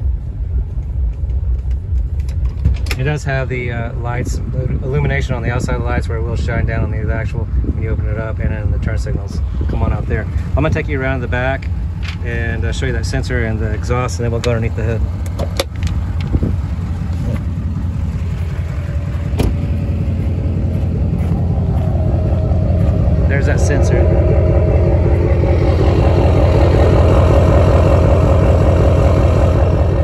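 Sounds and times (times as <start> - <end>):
diesel engine idling: 0.0 - 30.0.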